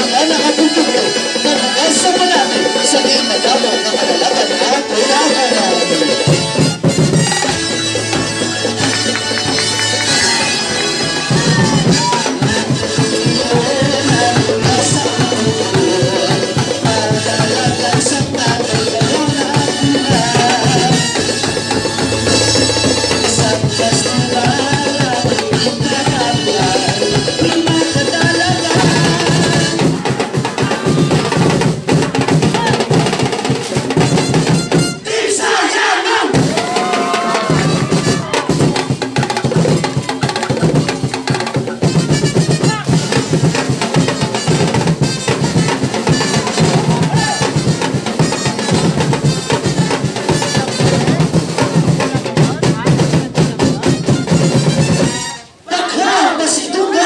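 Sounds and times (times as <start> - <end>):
drum-heavy dance music: 0.0 - 57.0.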